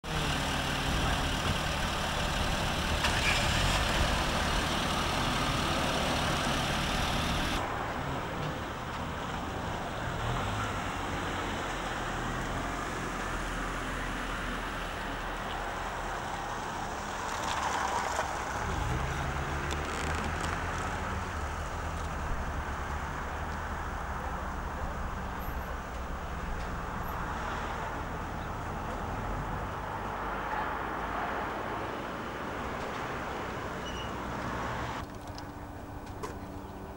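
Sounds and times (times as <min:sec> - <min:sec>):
car engine: 0:00.0 - 0:31.1
road traffic noise: 0:00.0 - 0:36.9.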